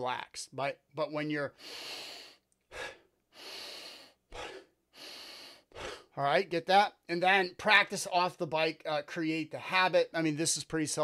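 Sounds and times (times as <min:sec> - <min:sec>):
man breathing: 0:01.5 - 0:06.2.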